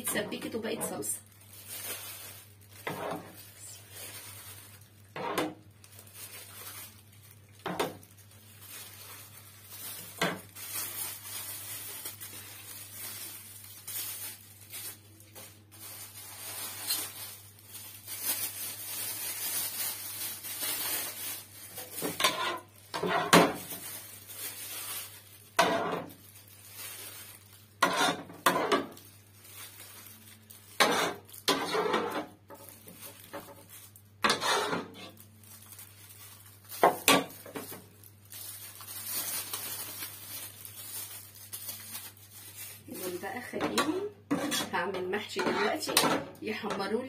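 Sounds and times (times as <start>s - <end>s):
ladle scraping pot: 34.3s - 35.1s.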